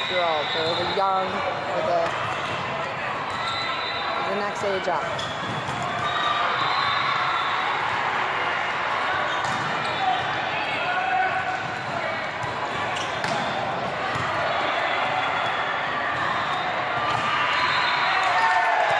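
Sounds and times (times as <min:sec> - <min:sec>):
volleyballs smacking: 0:11.6 - 0:14.4.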